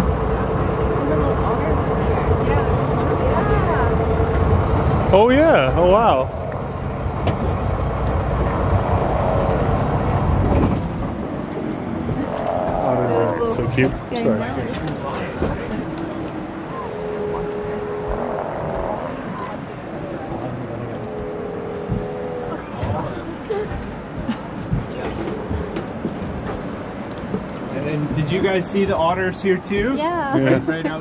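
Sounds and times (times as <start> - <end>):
boat motor rumbling: 0.0 - 31.0
water noise: 0.0 - 31.0
wind noise: 6.2 - 27.7.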